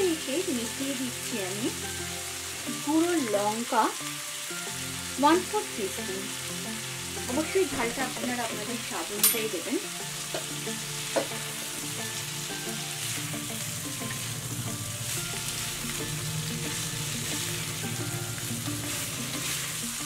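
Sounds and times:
vegetables sizzling in hot oil: 0.0 - 20.0
spatula stirring in a pan: 10.2 - 20.0.

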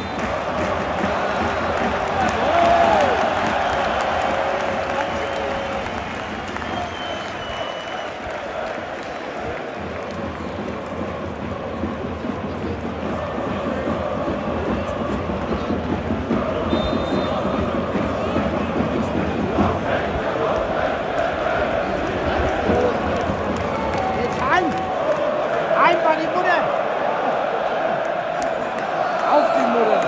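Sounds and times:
stadium crowd voices: 0.0 - 30.0.

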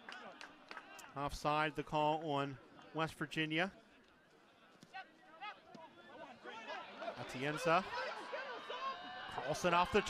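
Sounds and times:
faint shouts and chatter: 3.8 - 10.0.

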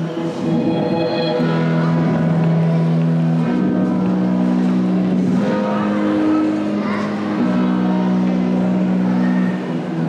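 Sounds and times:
music with long held notes: 0.0 - 10.0.

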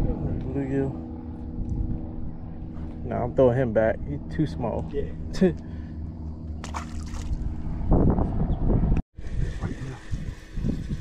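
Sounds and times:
steady low hum: 0.0 - 10.4.

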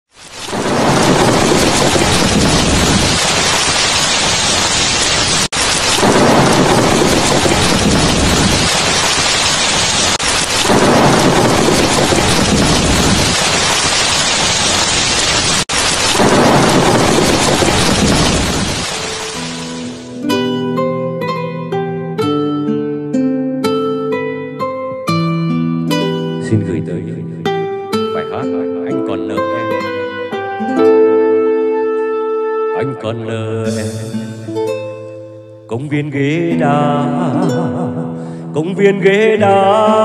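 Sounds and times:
heavy rain: 0.1 - 20.3, 36.5 - 40.0
thunder rolling: 0.4 - 20.2.

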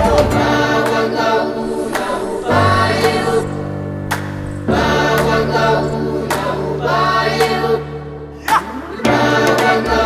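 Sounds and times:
group singing devotional chant: 0.0 - 10.0
steady held drone: 0.0 - 10.0.

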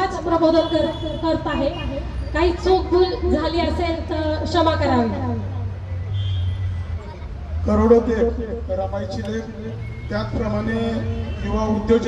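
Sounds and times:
woman's amplified voice: 0.0 - 5.7.

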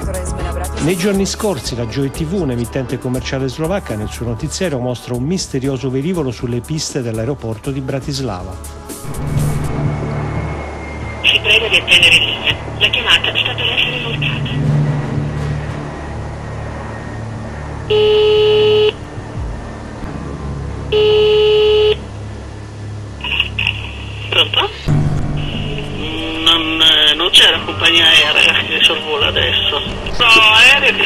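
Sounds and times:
low phone line hum: 9.3 - 31.0
telephone ringing tone: 17.9 - 19.0
voice on phone line: 23.2 - 24.9.

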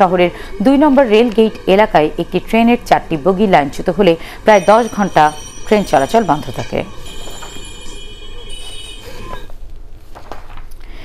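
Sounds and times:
metal squeal on railway track: 0.0 - 9.6.

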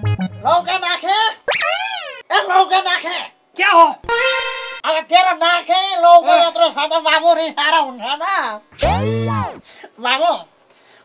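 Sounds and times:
man speaking: 0.4 - 1.4, 8.8 - 9.6
high whining cry: 8.8 - 9.6.

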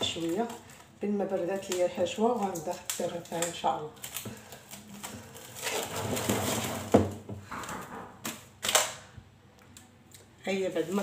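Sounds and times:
cling film crinkling: 0.0 - 6.8.

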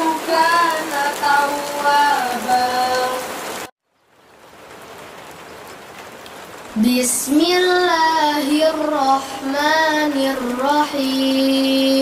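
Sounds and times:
sung recitation: 0.0 - 3.4, 6.8 - 12.0
rain hissing: 0.0 - 12.0.

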